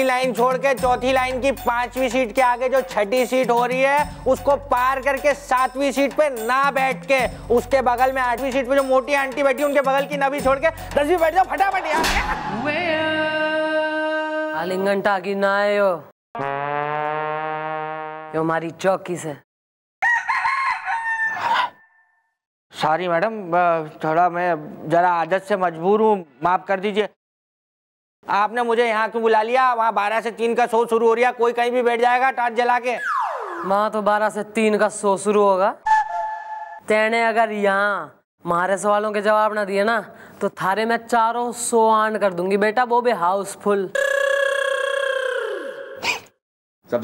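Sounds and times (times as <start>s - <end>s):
rooster crowing: 20.0s - 22.3s
held musical note sting: 35.9s - 36.8s.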